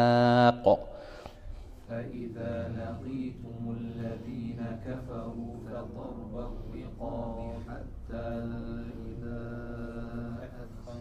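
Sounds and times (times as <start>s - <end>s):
man chanting melodically: 0.0s - 1.0s, 2.4s - 11.0s.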